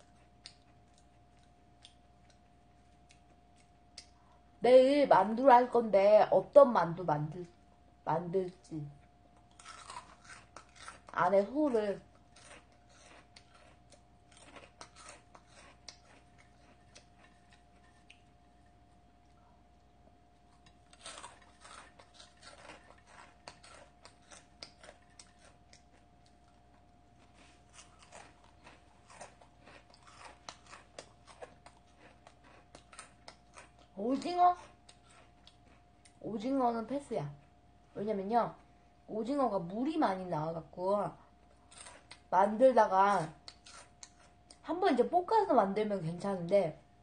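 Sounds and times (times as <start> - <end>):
person chewing crisp snack: 0.0 - 4.5, 9.2 - 36.2, 41.3 - 42.3, 43.2 - 44.6
faint steady hum: 0.0 - 47.0.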